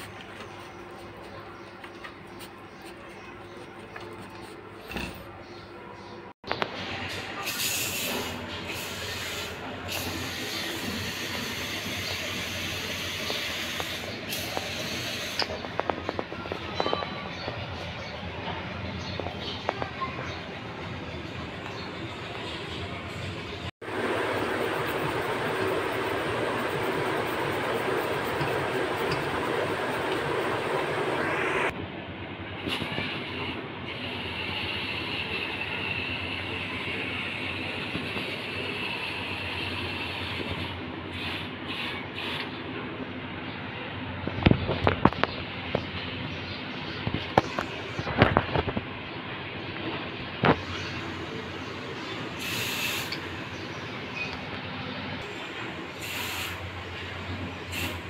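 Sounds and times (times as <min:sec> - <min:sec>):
sprayer hissing water into sink: 0:52.4 - 0:53.2, 0:56.0 - 0:56.6.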